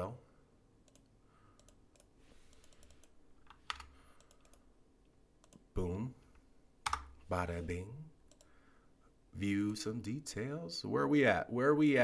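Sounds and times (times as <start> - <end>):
keyboard and mouse clicking: 0.8 - 4.6, 5.4 - 5.7, 6.8 - 7.1, 8.3 - 8.5.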